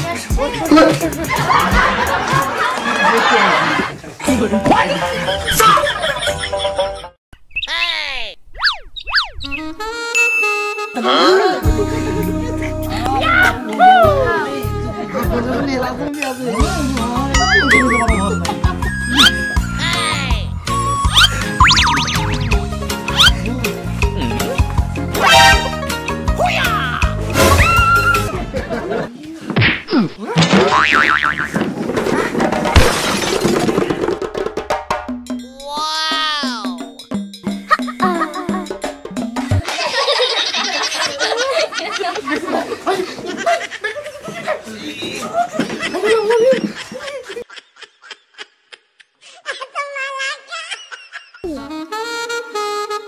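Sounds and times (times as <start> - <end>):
background music: 0.0 - 2.7, 4.2 - 7.2, 9.8 - 29.1, 51.4 - 53.0
cartoon rising and falling glides: 8.5 - 9.9, 21.0 - 23.4
jingle of stepped notes: 10.2 - 11.2
cartoon falling pitch effect: 20.9 - 23.3, 25.2 - 25.7
wobbling boing: 30.6 - 31.6
thud and crash: 31.5 - 34.6.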